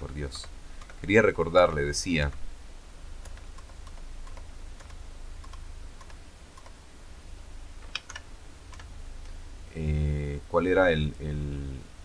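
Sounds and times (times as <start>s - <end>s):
low hum: 0.0s - 12.0s
computer keyboard clicks: 0.4s - 1.0s, 3.2s - 6.8s, 7.8s - 8.9s.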